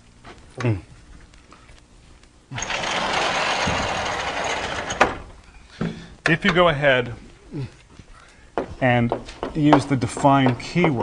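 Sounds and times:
blackboard scraping and rumbling: 2.6 - 5.3.

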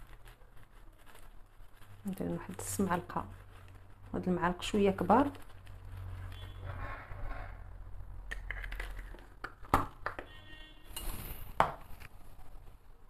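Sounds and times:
soft handling noises: 0.0 - 7.6.

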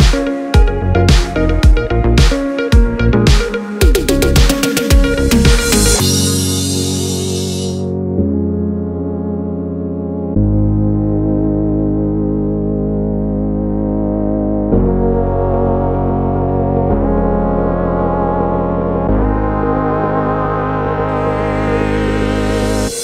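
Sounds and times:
held synthesizer chords: 0.0 - 23.0.

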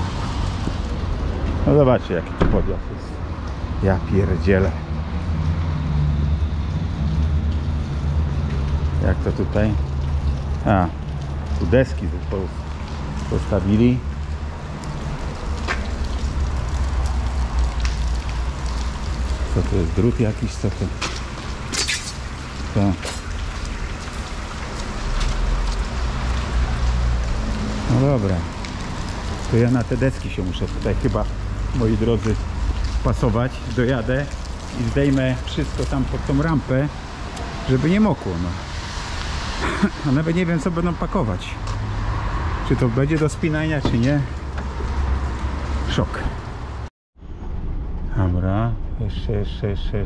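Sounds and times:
heavy rain on concrete: 0.0 - 46.9.

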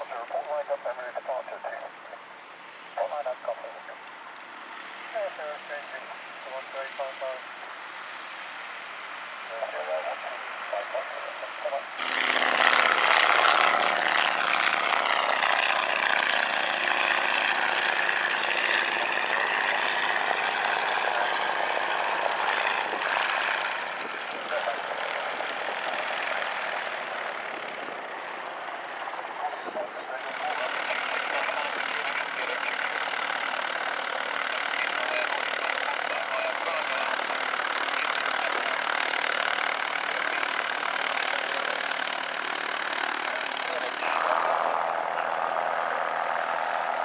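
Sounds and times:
propeller plane engine passing: 0.0 - 47.0.

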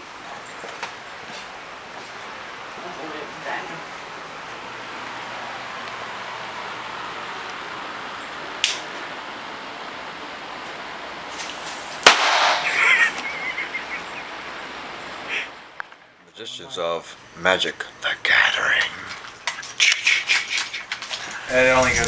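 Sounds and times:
firecracker bang: 11.6 - 13.1.

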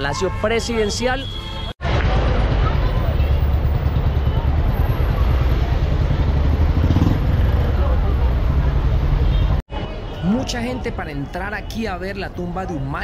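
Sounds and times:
motor traffic: 1.2 - 11.2
crowd chatter: 1.8 - 10.4.

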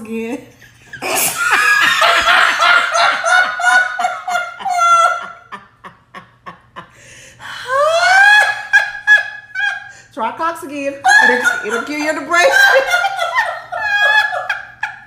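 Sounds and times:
high-pitched laughter: 0.9 - 5.8, 11.0 - 15.0.

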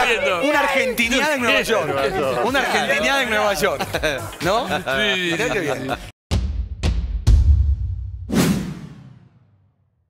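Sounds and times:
drum hits: 6.3 - 9.5.

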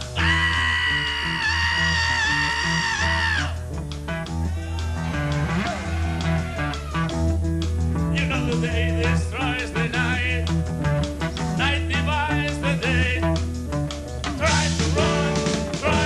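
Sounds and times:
rock band playing live: 0.0 - 16.0.

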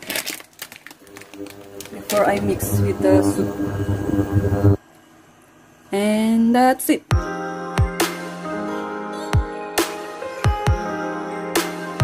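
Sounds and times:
plastic packaging crinkling: 0.0 - 2.4.

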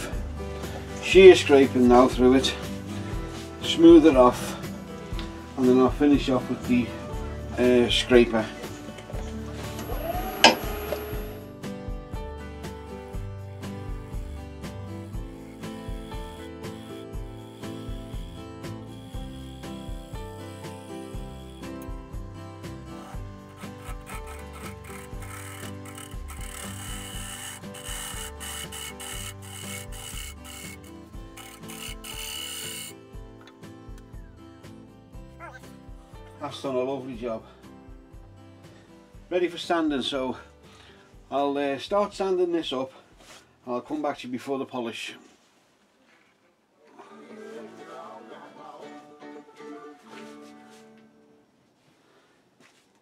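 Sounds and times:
background music: 0.0 - 42.8, 46.9 - 51.4
steel scraper cutting wooden bowl: 13.6 - 22.0, 22.9 - 33.0.

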